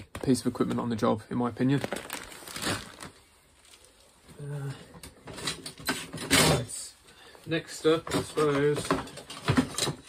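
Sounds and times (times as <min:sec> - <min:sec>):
plastic tub rustling: 0:00.2 - 0:04.4.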